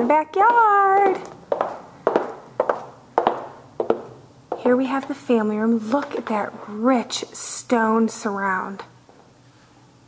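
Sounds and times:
footsteps indoors with echo: 0.0s - 7.4s.

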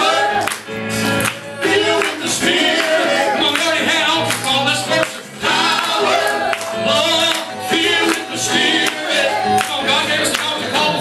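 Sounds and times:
group voices singing: 0.0s - 11.0s
man singing into a microphone: 1.4s - 11.0s.

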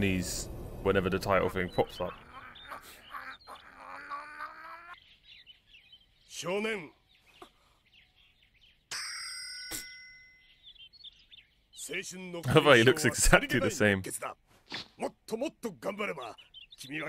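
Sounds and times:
bright ringing tone: 8.9s - 10.6s.

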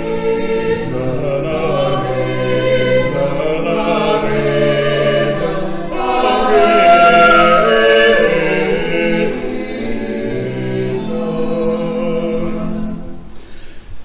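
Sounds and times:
choir singing sacred music: 0.0s - 13.6s.

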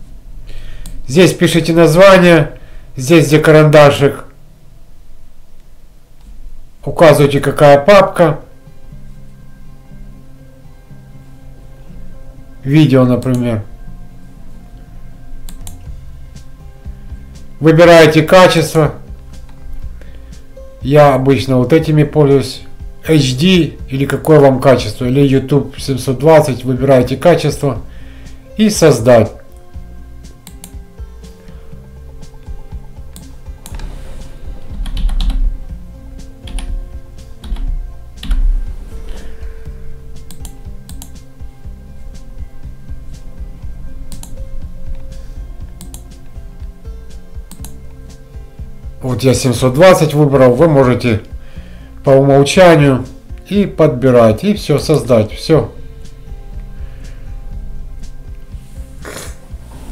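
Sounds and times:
quiet background music: 0.0s - 59.9s
computer mouse clicking: 15.4s - 15.8s, 33.1s - 34.0s, 34.7s - 35.5s, 40.3s - 41.2s, 44.1s - 45.0s, 45.8s - 46.2s, 47.5s - 47.8s.

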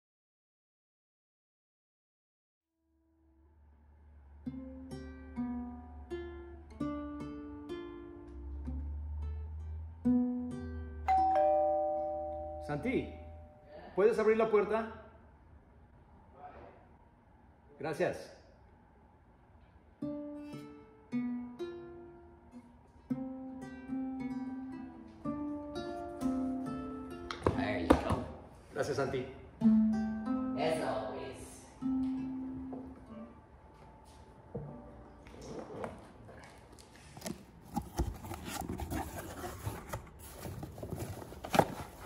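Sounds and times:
acoustic guitar plucked notes: 4.4s - 13.6s, 20.0s - 27.3s, 29.6s - 31.1s, 31.8s - 33.3s.

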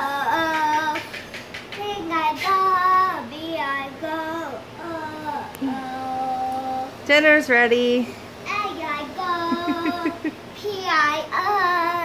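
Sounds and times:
girl singing alone: 0.0s - 1.1s, 1.8s - 7.0s, 8.5s - 12.0s.

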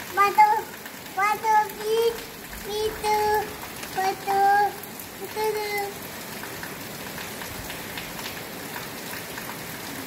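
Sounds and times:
raindrop taps: 0.0s - 9.6s
steady rain hiss: 0.0s - 10.0s.

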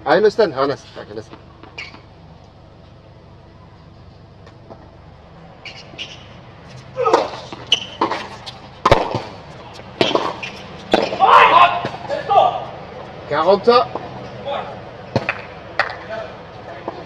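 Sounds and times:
tennis ball pops: 7.1s - 9.4s, 15.1s - 16.0s
man calling out: 11.2s - 12.8s.

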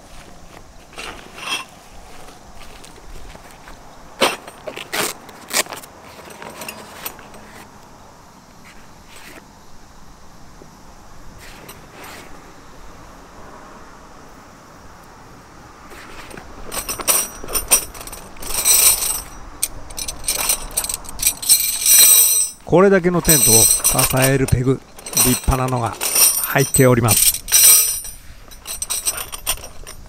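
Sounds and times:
metal tent pegs clinking: 0.9s - 1.8s, 4.2s - 7.6s, 16.1s - 30.0s.

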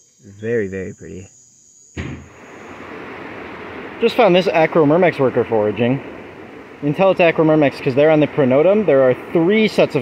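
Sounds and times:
insect trilling: 0.0s - 10.0s
steady rushing noise: 2.0s - 10.0s.

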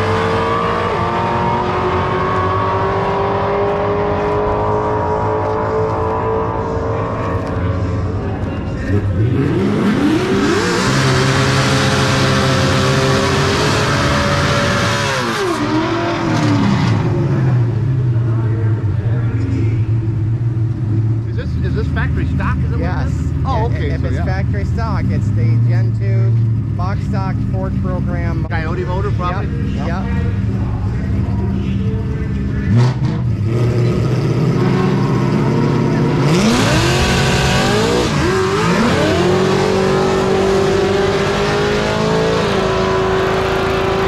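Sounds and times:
car engine revving: 0.0s - 44.0s
engines idling: 3.5s - 44.0s
voices: 3.6s - 10.9s, 17.0s - 33.0s.

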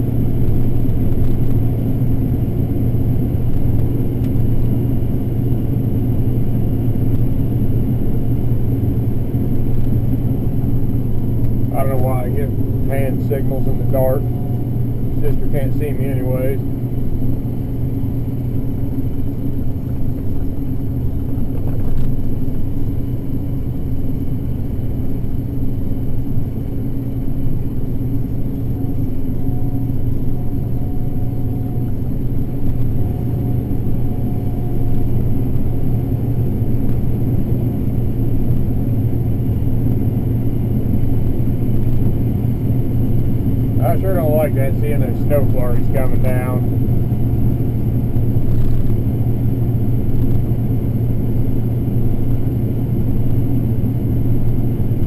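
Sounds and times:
combine harvester droning: 0.0s - 55.0s
faint thin whine: 9.2s - 16.9s, 26.3s - 55.0s.

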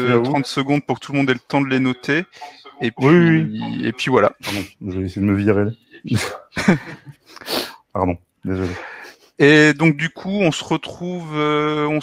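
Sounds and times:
man laughing: 6.1s - 7.2s.

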